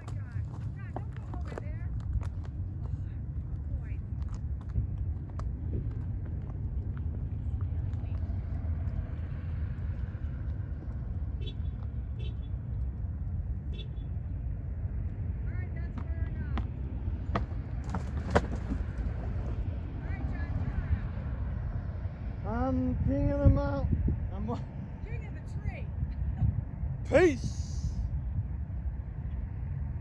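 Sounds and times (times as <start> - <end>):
low outdoor rumble: 0.0 - 30.0.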